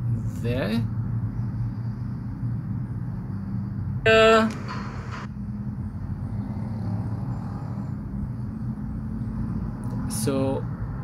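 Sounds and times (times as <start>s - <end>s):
low background hum: 0.0s - 10.7s.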